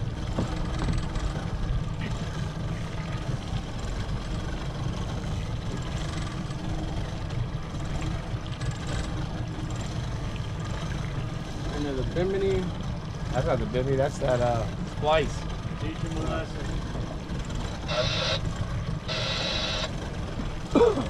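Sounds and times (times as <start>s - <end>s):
outboard motors running low speed: 0.0s - 21.0s.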